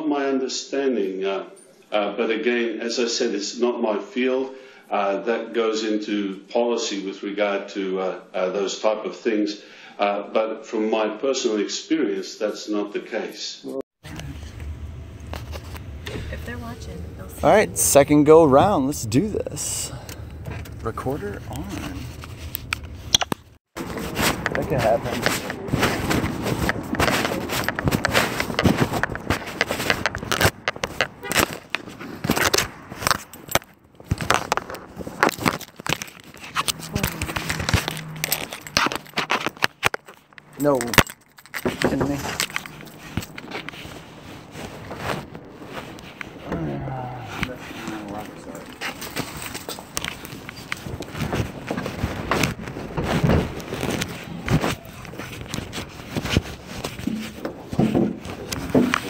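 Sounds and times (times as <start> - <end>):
microphone rubbing on clothing: 42.9 - 59.0.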